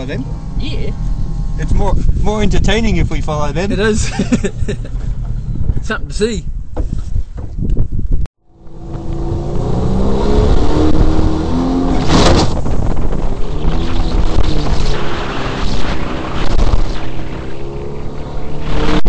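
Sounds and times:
rushing water and wind: 0:08.7 - 0:19.0.

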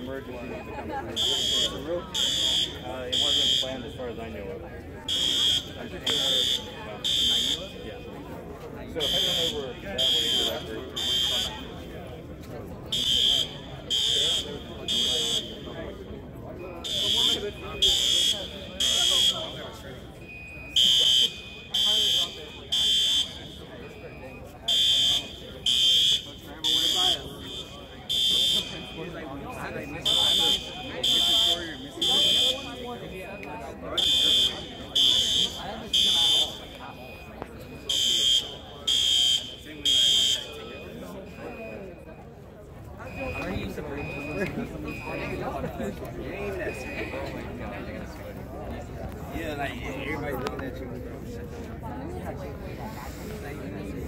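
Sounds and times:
fire alarm horn blasts: 0:00.0 - 0:08.2, 0:08.9 - 0:12.1, 0:12.8 - 0:42.2, 0:43.0 - 0:45.6, 0:46.5 - 0:47.6
lower-pitched alarm horn: 0:24.7 - 0:32.8.

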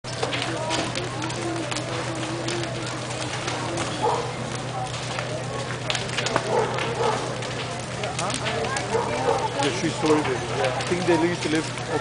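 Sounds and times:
fire crackling and popping: 0:00.0 - 0:12.0
people's voices: 0:00.1 - 0:12.0.

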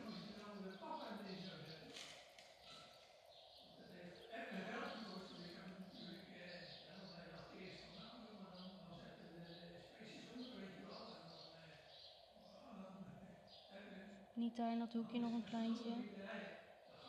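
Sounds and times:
faint speech murmuring: 0:00.0 - 0:17.0.

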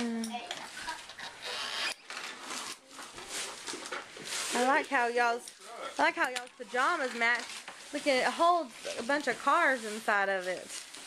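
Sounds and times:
wrapping paper rustling: 0:02.1 - 0:05.6, 0:06.5 - 0:11.0.

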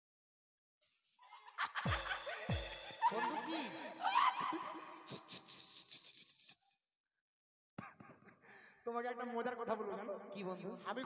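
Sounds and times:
people laughing: 0:01.3 - 0:06.6.

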